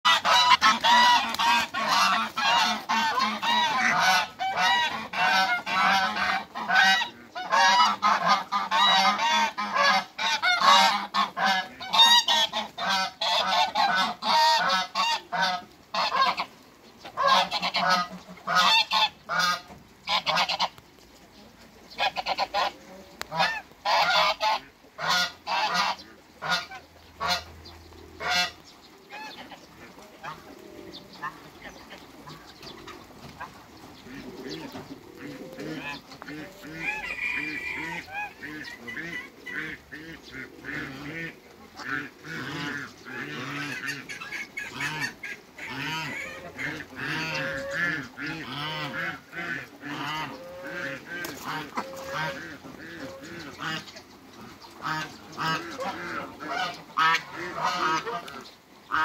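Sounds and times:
geese honking: 0.0s - 20.8s, 21.9s - 59.0s.

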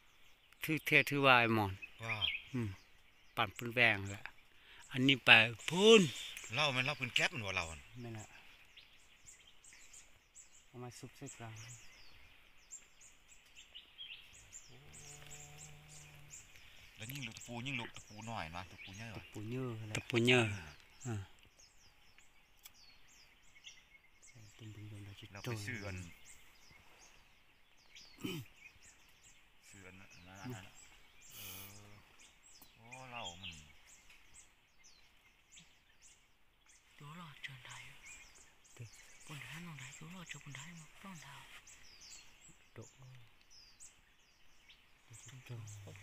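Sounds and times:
birds chirping: 0.0s - 46.0s
man speaking: 0.6s - 2.8s, 3.4s - 4.3s, 4.9s - 8.4s, 17.0s - 21.3s, 24.4s - 26.2s, 45.1s - 46.0s
insects hissing: 1.3s - 19.4s, 29.8s - 34.4s.

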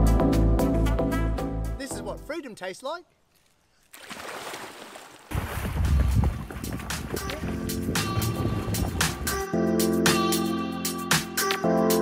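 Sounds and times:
water splashing and sloshing: 3.2s - 9.2s
wind rumble on microphone: 5.3s - 9.4s.

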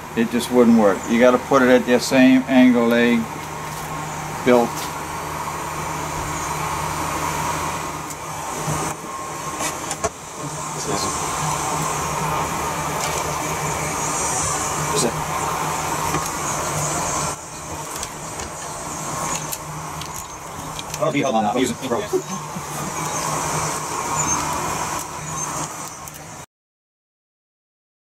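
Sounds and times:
steady droning hum: 0.0s - 26.4s.

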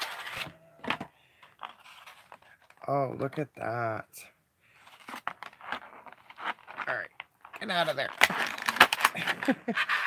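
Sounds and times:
plastic tray crackling and snapping: 7.2s - 9.5s.

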